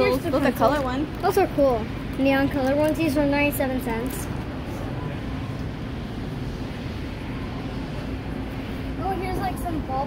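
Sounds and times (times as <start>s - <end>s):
store background noise: 0.0s - 10.0s.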